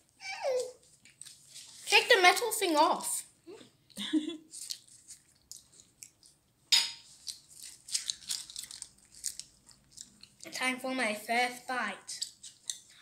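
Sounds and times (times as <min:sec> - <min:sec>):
foil muffin case crackling: 0:07.2 - 0:10.6.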